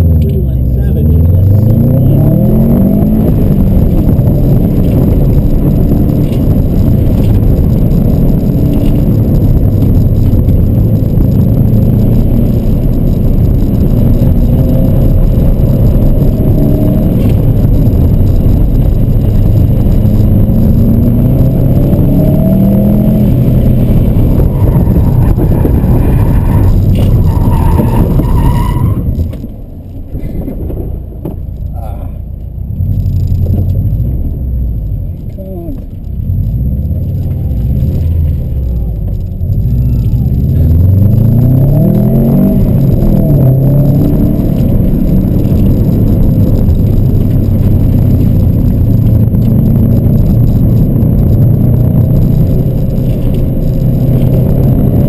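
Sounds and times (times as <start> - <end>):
car engine revving: 0.0 - 55.0
tyre squeals: 24.5 - 29.4.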